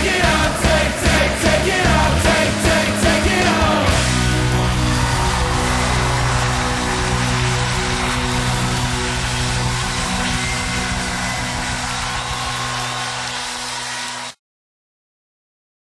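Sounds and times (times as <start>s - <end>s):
rock band sustained chord: 0.0s - 14.4s
distorted guitar noise: 0.4s - 14.4s.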